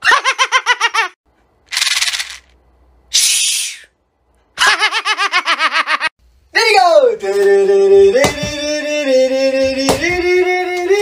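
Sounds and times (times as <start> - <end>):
man laughing rapidly: 4.6 - 6.1.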